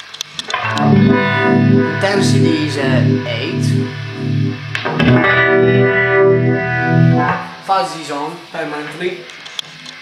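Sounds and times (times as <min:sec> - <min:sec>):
distorted electric guitar chord: 0:00.4 - 0:07.8.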